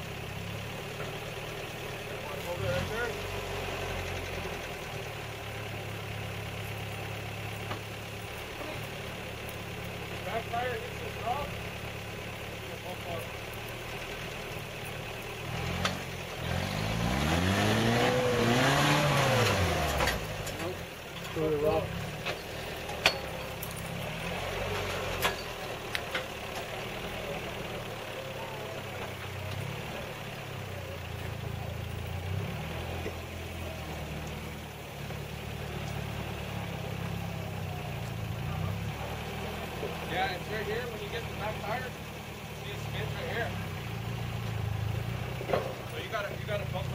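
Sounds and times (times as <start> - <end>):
suv engine revving: 0.0 - 46.9.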